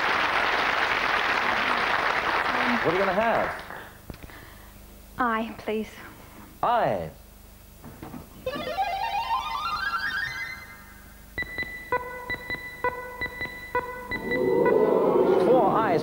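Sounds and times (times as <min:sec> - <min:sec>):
short electronic beeps: 0:11.4 - 0:14.9
rising run of electronic notes: 0:14.1 - 0:16.0.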